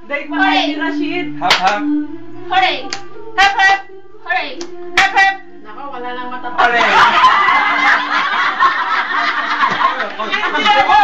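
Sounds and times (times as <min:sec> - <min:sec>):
group of people laughing: 0:06.0 - 0:11.0.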